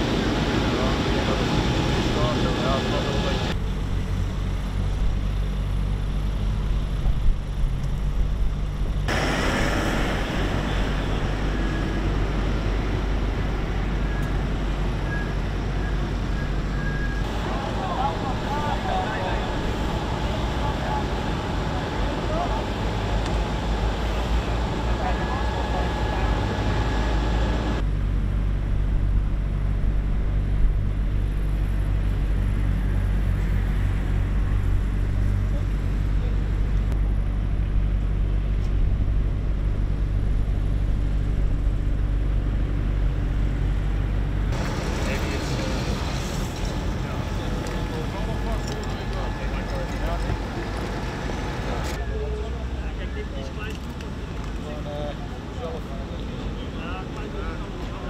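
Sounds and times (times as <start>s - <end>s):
large vehicle engine idling: 0.0s - 58.0s
voices talking: 0.1s - 3.6s, 10.4s - 27.8s, 44.6s - 58.0s.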